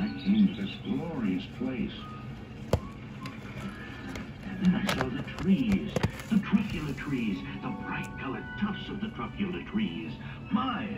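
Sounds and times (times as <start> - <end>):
soft background music: 0.0 - 10.9.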